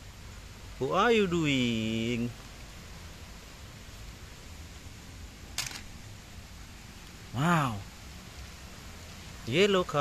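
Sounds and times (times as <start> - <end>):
toy car clattering into plastic basket: 5.6 - 5.9.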